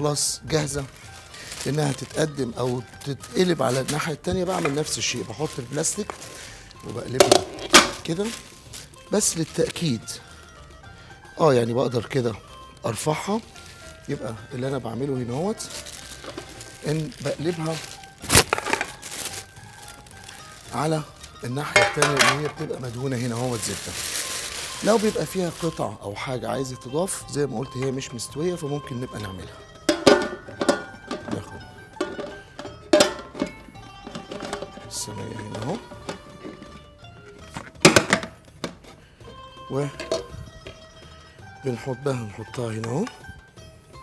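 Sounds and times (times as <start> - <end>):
tray clattering and rustling: 7.1 - 8.2, 16.2 - 19.0, 21.7 - 22.7.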